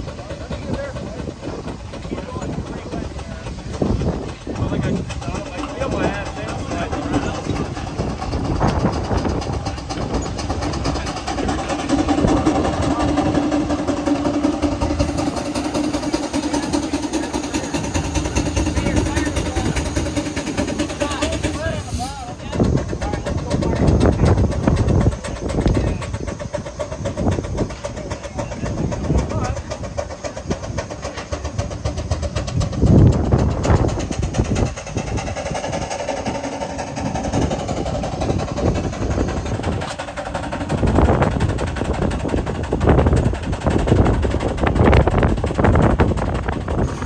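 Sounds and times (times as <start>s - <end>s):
steam engine exhaust chuffing: 0.0s - 47.0s.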